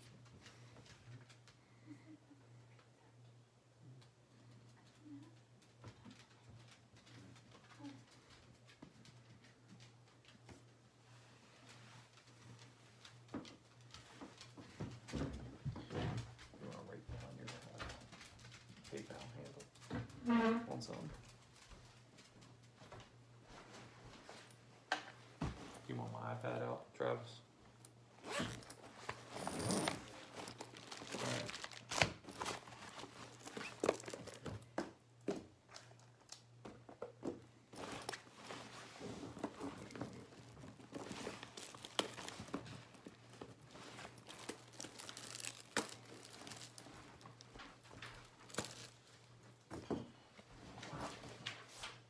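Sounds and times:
plastic or paper crinkling: 29.0 - 34.7, 37.8 - 49.4.

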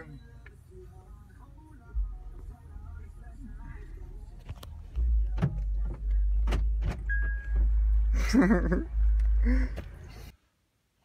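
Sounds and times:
heavy low rumble in car: 0.0 - 10.3
short steady beep: 7.1 - 7.6.

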